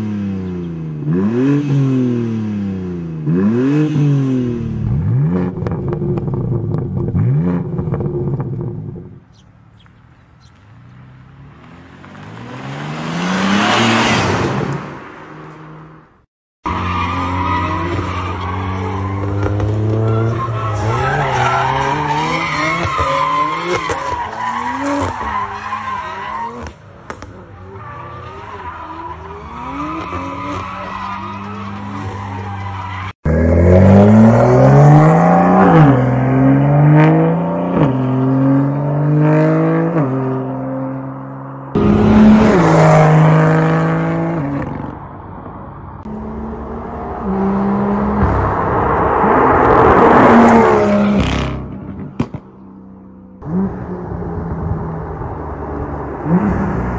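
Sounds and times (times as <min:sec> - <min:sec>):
tyres skidding and squealing: 0:07.2 - 0:54.3
car engine revving: 0:10.7 - 0:16.0, 0:33.3 - 0:56.9.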